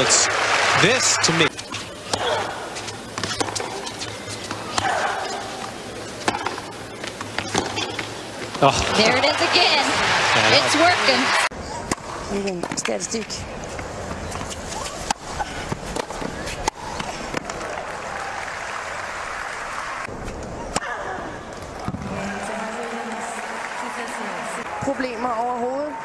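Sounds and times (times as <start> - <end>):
crowd noise: 0.0 - 26.0
racket hitting tennis ball: 1.5 - 8.1, 14.2 - 17.6
ball bouncing: 3.1 - 8.9.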